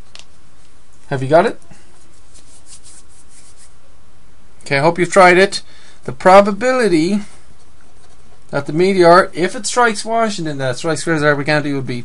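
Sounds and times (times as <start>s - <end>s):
steady background hiss: 0.0s - 12.0s
faint scratching strokes: 0.6s - 3.9s.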